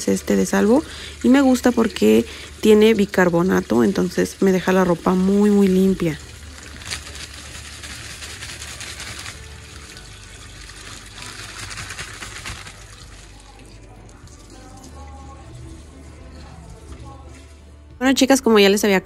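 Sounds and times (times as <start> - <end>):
water splashing into washing machine: 0.0 - 17.8.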